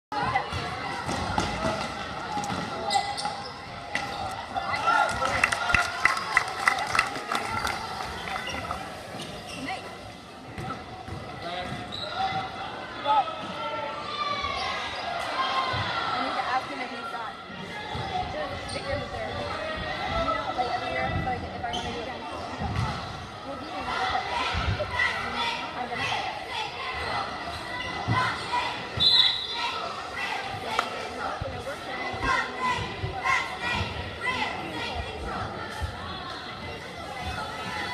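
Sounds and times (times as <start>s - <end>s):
spectators' voices: 0.1s - 37.9s
sneakers squeaking: 0.3s - 4.6s, 7.6s - 12.6s, 18.5s - 19.2s, 21.6s - 22.9s.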